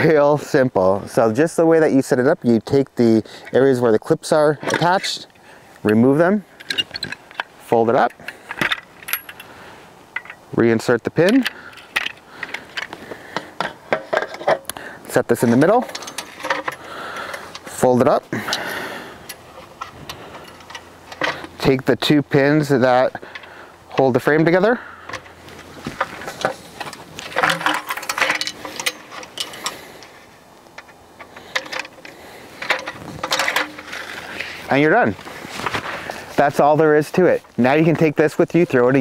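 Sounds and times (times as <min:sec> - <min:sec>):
metal camping table clattering: 0:03.4 - 0:14.7, 0:15.3 - 0:38.1.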